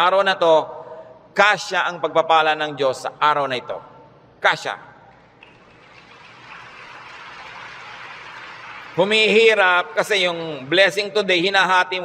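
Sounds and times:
low steady hiss: 0.0s - 12.0s.

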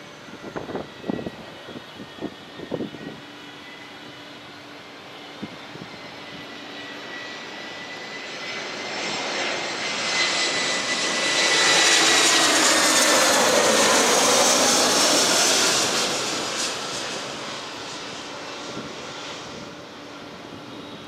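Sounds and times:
high engine whine: 0.0s - 21.0s
jet engines roaring overhead: 0.0s - 21.0s.

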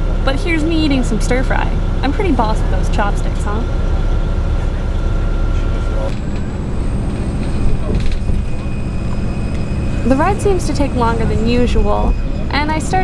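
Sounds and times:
bus engine and road rumble: 0.0s - 13.0s
faint high whine: 0.1s - 13.0s.

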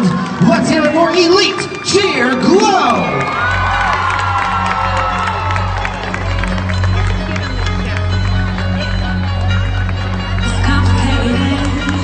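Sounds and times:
crowd cheering and screaming: 0.0s - 12.0s.

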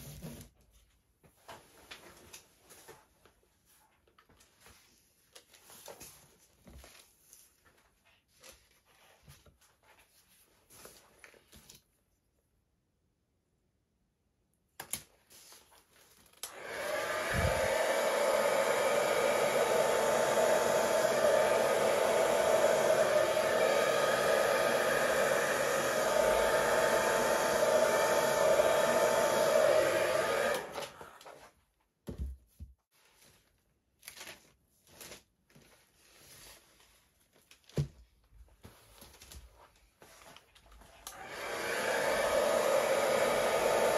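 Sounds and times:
hair dryer running: 16.4s - 31.4s, 41.0s - 43.9s
faint handling sounds: 32.8s - 41.1s.

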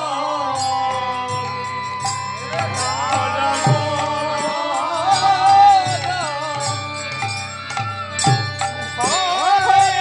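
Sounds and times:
sustained instrumental tones: 0.0s - 10.0s.

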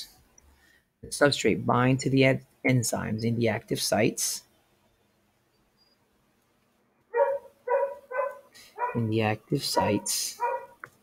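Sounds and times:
dog barking: 7.1s - 9.1s, 9.8s - 10.8s.

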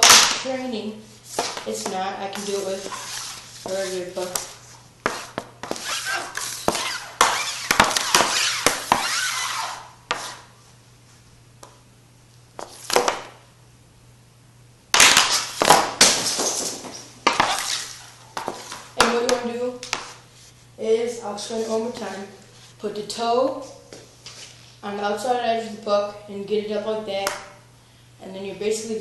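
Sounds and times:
steady low hum: 0.0s - 29.0s
hockey stick scraping puck: 1.2s - 10.5s, 12.6s - 13.3s, 15.0s - 20.2s.

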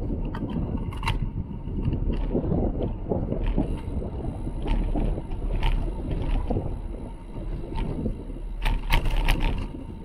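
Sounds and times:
bike clicks and rattles: 0.0s - 10.0s
tyre noise on asphalt: 0.0s - 10.0s
wind rumbling on microphone: 0.0s - 10.0s.

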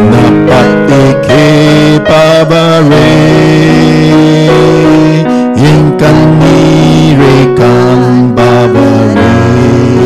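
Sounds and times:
guitar playing worship music: 0.0s - 10.0s.

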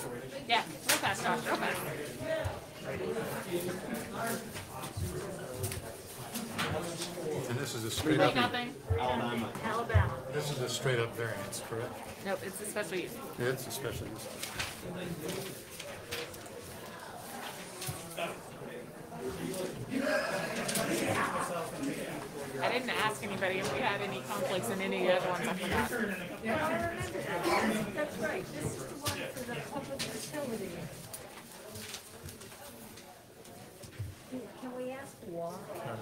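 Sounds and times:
murmur of voices: 0.0s - 36.0s
rustle of people moving: 25.2s - 34.4s.

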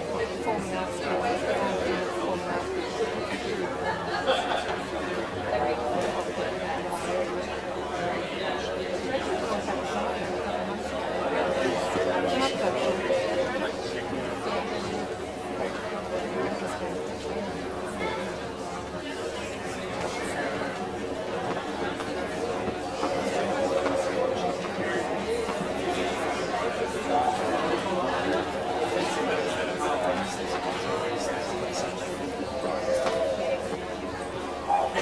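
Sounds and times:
crowd chatter: 0.0s - 35.0s.

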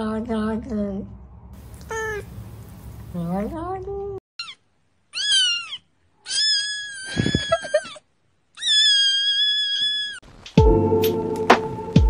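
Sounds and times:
kitten meowing: 1.8s - 2.3s, 4.4s - 8.0s, 8.6s - 10.2s
music: 10.5s - 12.0s.

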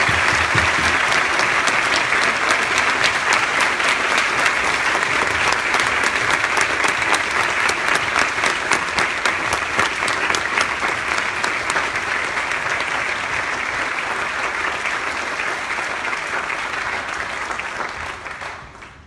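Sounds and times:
audience applauding: 0.0s - 19.0s.

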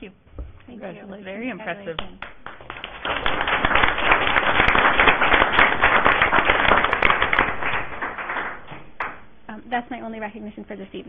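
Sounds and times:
audience applauding: 2.0s - 9.2s.

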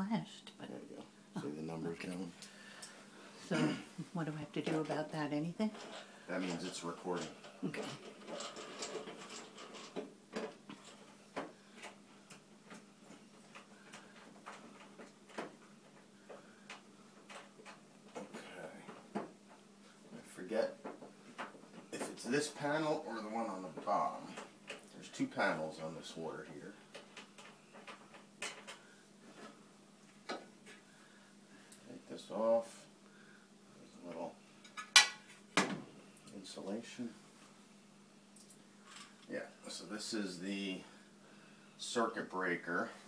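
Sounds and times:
faint steady hum: 0.0s - 43.0s
screws and panel clicking and scraping: 8.0s - 11.1s.

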